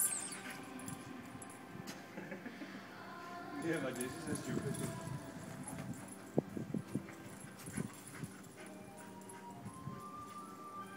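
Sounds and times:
faint music: 0.0s - 10.9s.

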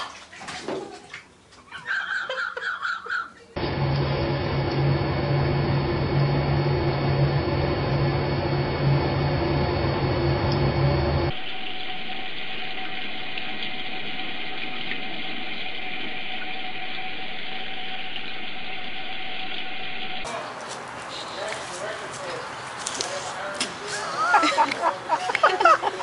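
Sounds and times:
low hum with noise: 3.6s - 20.3s.

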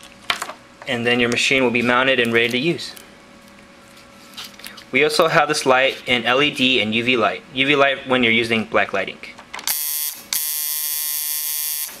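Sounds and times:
tattoo machine buzzing: 9.7s - 12.0s.

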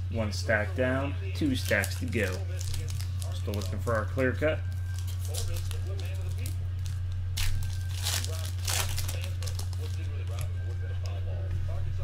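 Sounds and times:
wrapper crinkling and tearing: 1.4s - 10.5s.

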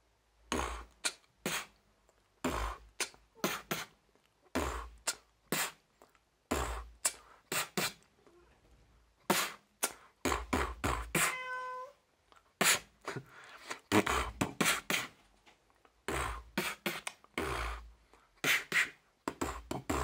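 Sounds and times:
cat meow: 11.2s - 12.0s.

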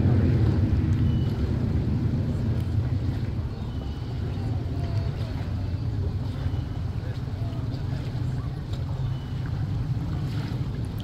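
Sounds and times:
outboard motor rumbling: 0.0s - 11.0s.

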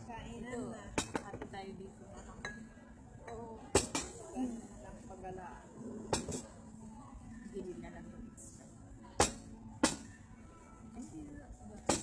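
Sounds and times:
faint background chatter: 0.0s - 12.0s
tableware clinking: 0.9s - 1.5s, 2.2s - 2.7s, 3.3s - 4.3s, 6.1s - 6.6s.

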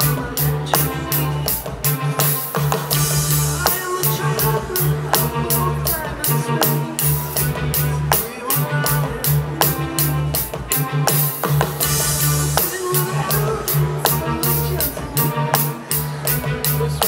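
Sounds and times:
backing track guitar and bass: 0.0s - 17.0s
drums: 0.0s - 17.0s.

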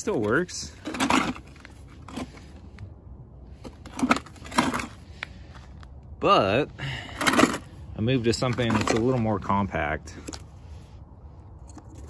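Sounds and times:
plastic unit crunching on gravel: 0.0s - 2.8s, 3.6s - 5.8s, 7.1s - 10.5s.

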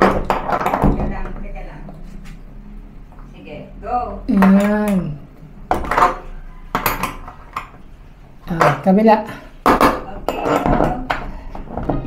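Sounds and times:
metal hinge clinking and knocking: 5.7s - 7.8s.

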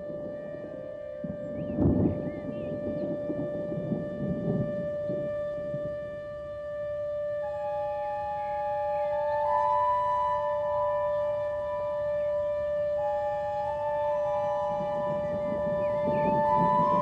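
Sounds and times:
musical drone: 0.0s - 17.0s
thunder rumble: 0.1s - 5.8s, 13.8s - 17.0s.

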